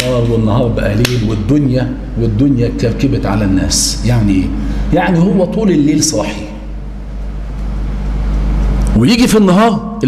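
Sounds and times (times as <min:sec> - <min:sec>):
person speaking: 0:00.0 - 0:06.8
low hum and rumble: 0:00.0 - 0:10.0.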